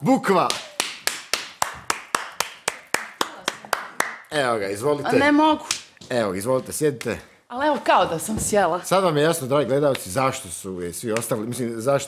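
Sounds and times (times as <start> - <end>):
person clapping hands: 0.4 - 4.3.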